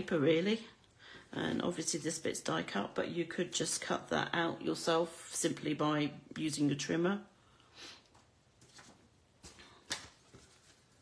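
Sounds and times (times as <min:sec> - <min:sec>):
card tapping and rustling: 0:08.6 - 0:11.0.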